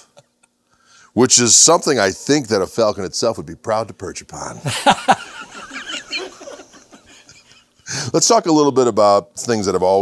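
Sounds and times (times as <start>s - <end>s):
man laughing heartily: 4.6s - 8.0s.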